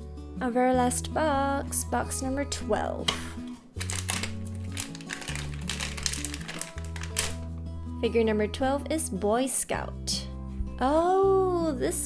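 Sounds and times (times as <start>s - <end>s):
foil and cardboard packaging crinkling: 3.5s - 7.5s.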